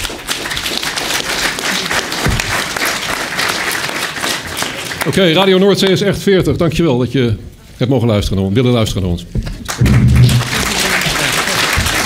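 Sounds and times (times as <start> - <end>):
audience applauding: 0.0 - 5.9, 9.6 - 12.0.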